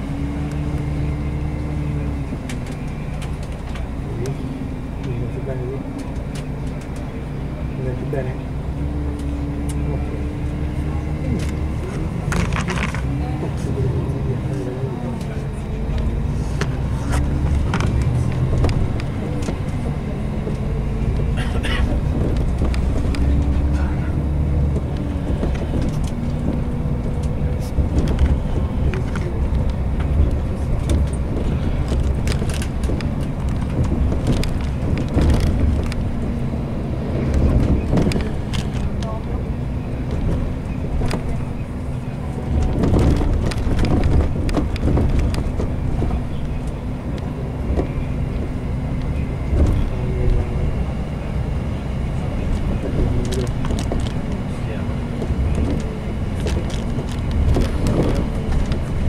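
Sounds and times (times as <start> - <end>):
bus engine drone: 0.0 - 59.0
low road rumble: 0.0 - 59.0
knocks and rattles: 16.6 - 39.3, 42.4 - 48.6.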